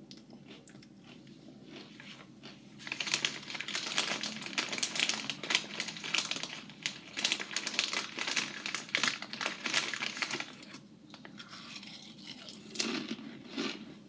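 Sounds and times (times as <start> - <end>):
plastic chip bag crinkling: 1.7 - 13.9.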